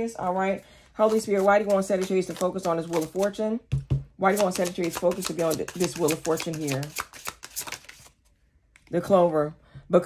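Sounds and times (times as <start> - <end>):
cards being shuffled: 1.0 - 3.3, 4.3 - 8.2.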